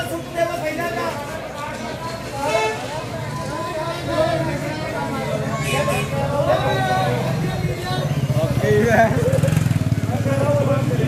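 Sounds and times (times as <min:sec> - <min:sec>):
people talking: 0:00.0 - 0:11.0
traffic rumble: 0:00.0 - 0:11.0.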